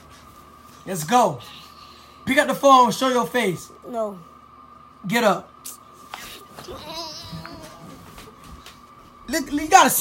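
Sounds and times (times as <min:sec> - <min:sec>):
faint high hum: 0:00.0 - 0:10.0
person whining muffled: 0:06.6 - 0:08.2.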